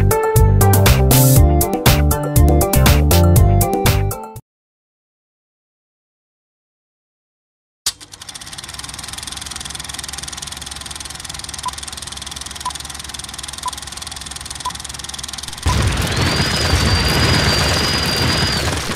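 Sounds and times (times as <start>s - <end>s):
film projector whir and clatter: 7.9s - 18.9s.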